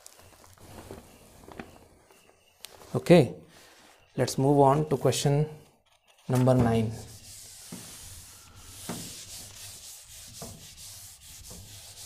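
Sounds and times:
eraser wiping a whiteboard: 6.8 - 12.0.

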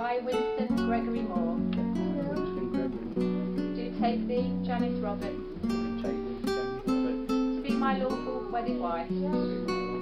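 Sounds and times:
acoustic guitar plucked melody: 0.0 - 10.0.

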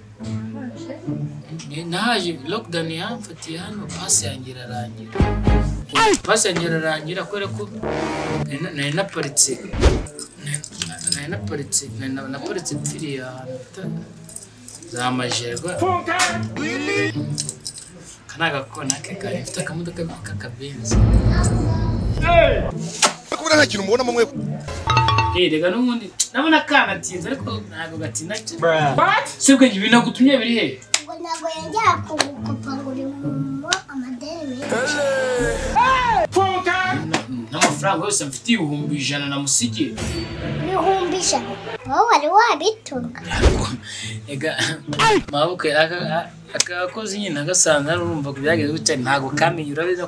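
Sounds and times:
voices: 15.3 - 17.2.

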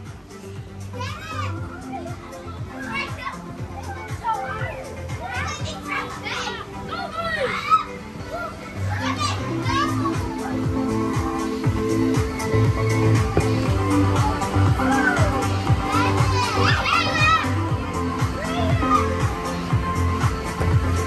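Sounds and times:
background music with low beat: 0.0 - 7.4, 8.3 - 21.0
children shouting and squealing: 0.4 - 21.0
thuds of jumping: 13.3 - 13.8.

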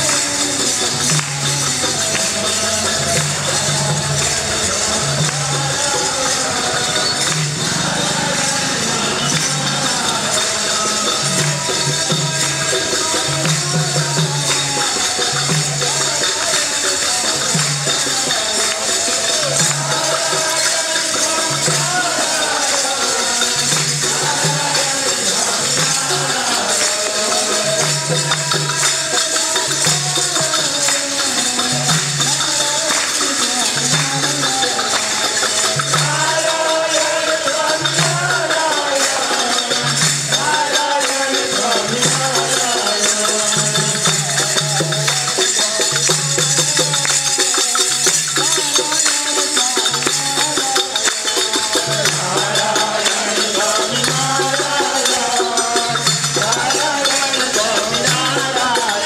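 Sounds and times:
group devotional singing: 0.0 - 59.0
hand clapping: 0.0 - 59.0
jingling percussion: 0.0 - 59.0.

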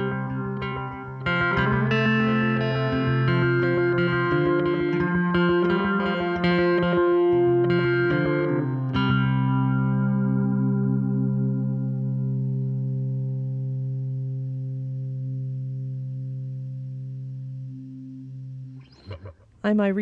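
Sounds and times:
electric guitar chord ringing: 0.0 - 19.2.

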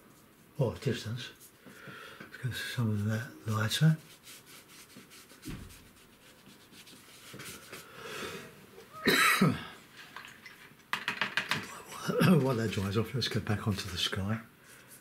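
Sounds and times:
paintbrush strokes on paper: 2.4 - 7.9, 12.2 - 15.0
loud cough: 9.0 - 9.8.

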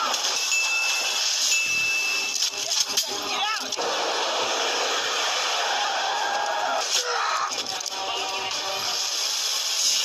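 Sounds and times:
steady rushing noise: 0.2 - 10.0.

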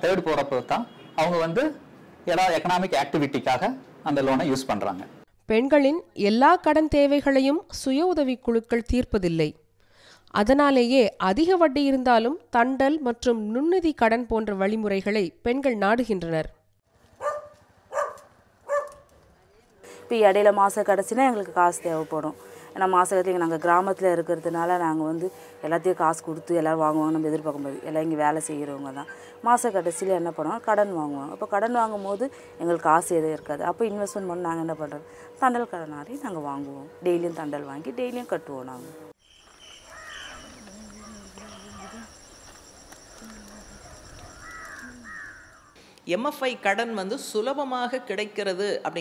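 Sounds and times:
dog barking: 17.2 - 19.1
animal call: 39.4 - 45.8.

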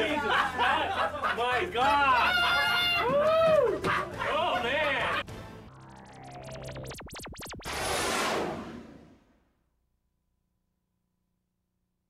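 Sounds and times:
man laughing loudly: 0.0 - 5.2.

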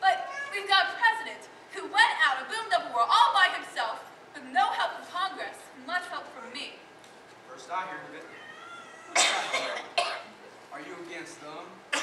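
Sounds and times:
person coughing: 9.1 - 10.3.

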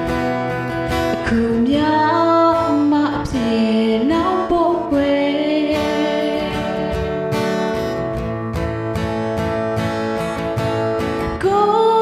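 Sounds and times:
guitar accompaniment: 0.0 - 12.0
woman singing pop song: 1.0 - 7.3, 11.2 - 12.0.

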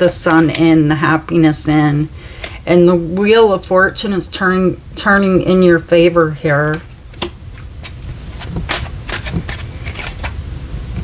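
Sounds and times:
cards clicking and sliding: 7.2 - 10.4.

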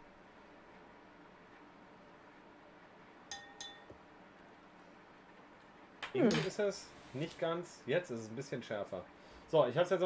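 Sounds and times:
spoon clinking on a glass: 3.3 - 3.9.

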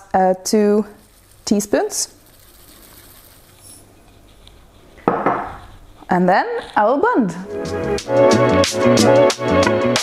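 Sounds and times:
seeds poured into food processor: 0.6 - 3.9
kitchenware clatter: 5.0 - 5.6.

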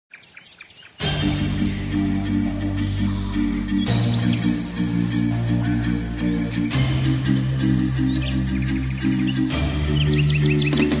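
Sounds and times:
bird chirps: 0.1 - 1.6, 3.0 - 11.0
music with sustained tones: 1.0 - 11.0.

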